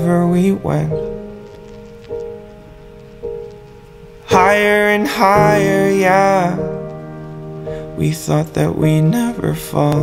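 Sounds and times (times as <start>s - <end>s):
faint hiss: 0.0s - 10.0s
soft pop ballad backing chords: 0.0s - 10.0s.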